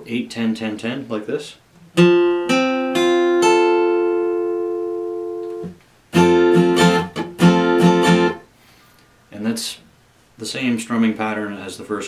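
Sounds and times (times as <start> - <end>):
acoustic guitar chord strummed: 1.9 - 8.5
damped guitar strums: 1.9 - 8.5.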